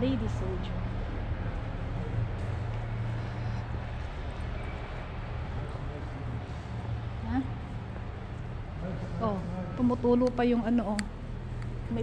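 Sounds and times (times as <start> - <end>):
vehicle engines rumbling: 0.0 - 12.0.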